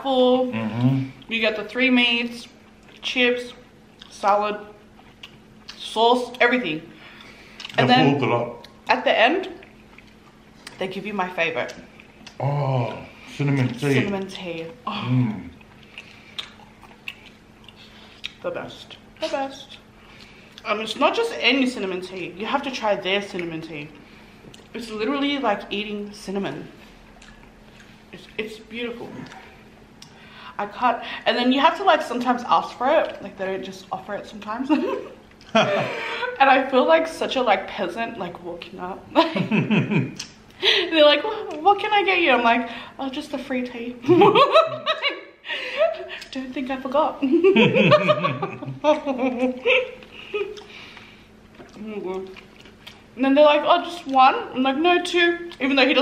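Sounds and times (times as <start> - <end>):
person chewing food: 4.8 - 5.8, 7.1 - 7.8, 9.6 - 10.8, 11.7 - 13.2, 15.3 - 20.6, 27.1 - 28.3, 29.1 - 30.2, 50.0 - 53.2
wet mouth clicks and smacks: 15.6 - 19.1, 40.1 - 40.5
two people laughing: 34.7 - 36.4, 39.2 - 40.8, 44.0 - 46.1, 47.2 - 50.6.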